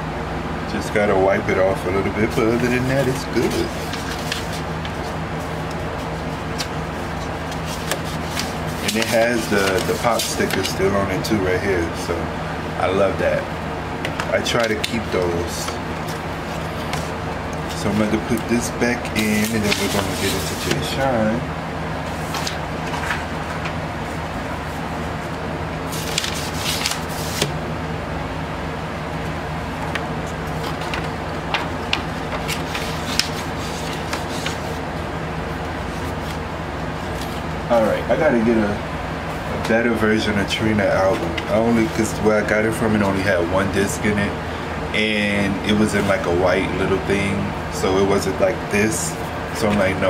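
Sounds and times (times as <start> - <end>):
electric fans humming: 0.0 - 50.0
paper rustling: 2.2 - 11.4, 14.2 - 21.0, 22.1 - 24.2, 25.2 - 27.6, 29.8 - 34.8, 35.8 - 37.6.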